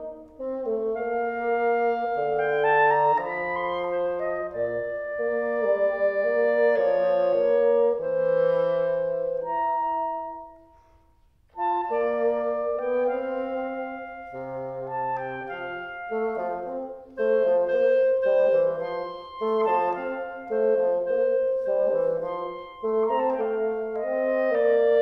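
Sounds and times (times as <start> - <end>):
clarinet and bassoon duet: 0.0 - 25.0.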